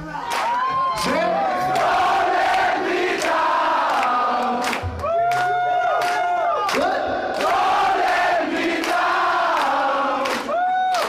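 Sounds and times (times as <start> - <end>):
crowd singing along: 1.0 - 5.0, 6.8 - 10.5
sharp claps or drum hits: 1.7 - 11.0.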